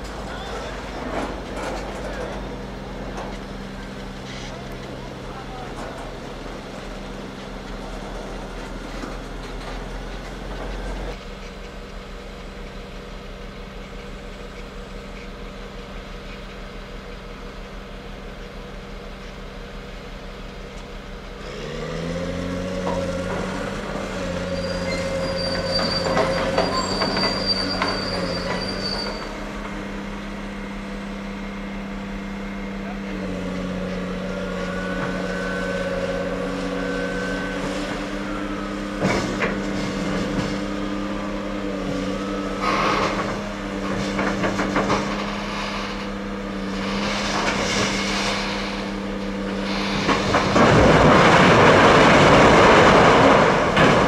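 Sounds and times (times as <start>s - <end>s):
heavy diesel engine revving: 0.0s - 11.2s, 21.2s - 54.0s
rocks pouring out with a crash: 42.8s - 54.0s.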